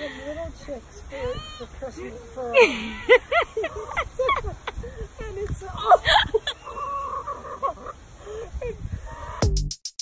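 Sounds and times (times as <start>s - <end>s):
hen clucking: 3.4s - 4.1s, 6.1s - 8.0s, 9.0s - 9.5s.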